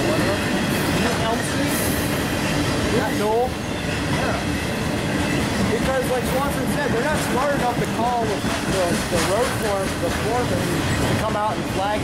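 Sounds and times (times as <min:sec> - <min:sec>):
freight train wheels on rails: 0:00.0 - 0:12.0.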